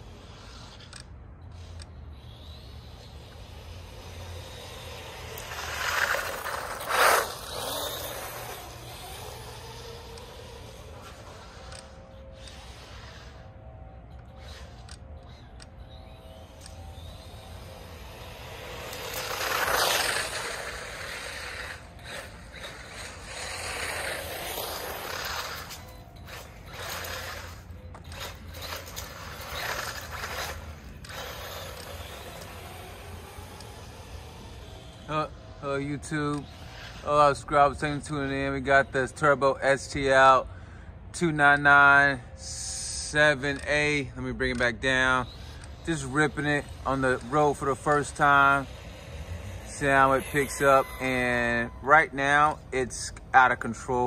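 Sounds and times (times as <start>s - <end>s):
rc car driving on asphalt: 0.0s - 54.0s.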